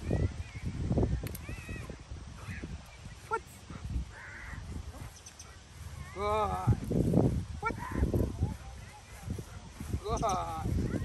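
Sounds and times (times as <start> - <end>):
man speaking: 6.1 - 6.8, 10.0 - 10.8.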